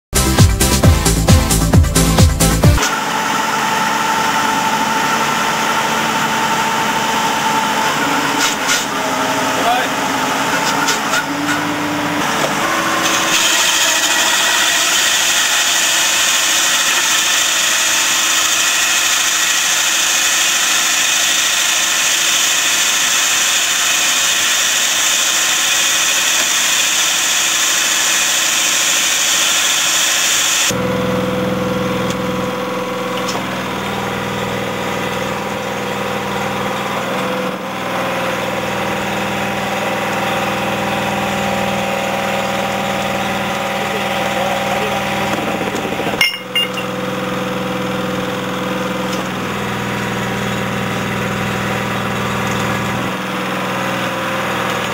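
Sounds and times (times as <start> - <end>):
hydraulic drill grinding into rock: 4.1 - 30.8.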